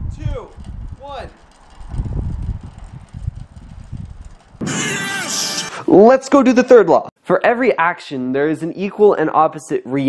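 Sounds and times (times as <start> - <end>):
wind buffeting microphone: 0.0 - 4.7.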